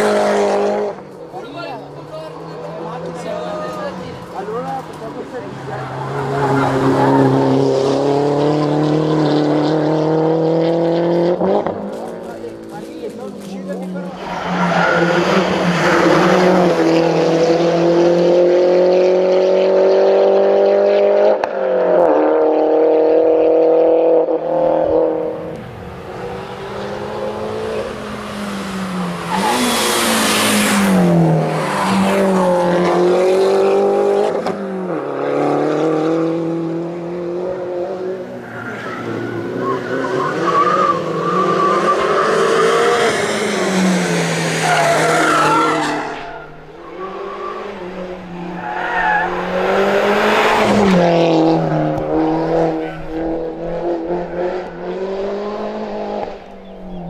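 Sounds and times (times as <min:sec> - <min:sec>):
race car engine at full throttle: 0:00.0 - 0:57.0.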